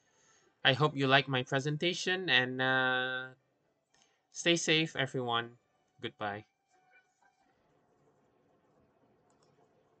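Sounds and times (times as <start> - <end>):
computer mouse clicks: 7.9 - 10.0.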